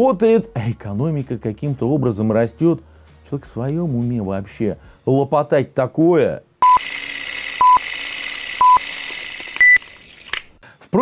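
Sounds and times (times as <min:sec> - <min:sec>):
countdown beeps: 0:06.6 - 0:06.8, 0:07.6 - 0:07.8, 0:08.6 - 0:08.8
higher beep: 0:06.6 - 0:06.8.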